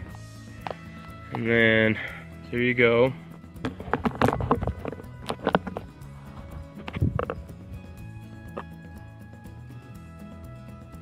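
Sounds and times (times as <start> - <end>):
background music sustained tones: 0.0 - 11.0.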